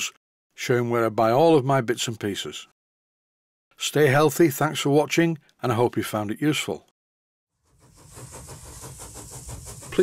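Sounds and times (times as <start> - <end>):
steam engine beat: 7.6 - 10.0
steam hiss: 7.6 - 10.0.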